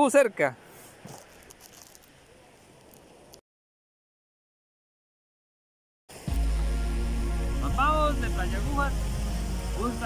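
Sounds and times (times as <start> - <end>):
faint wind: 0.0 - 3.4.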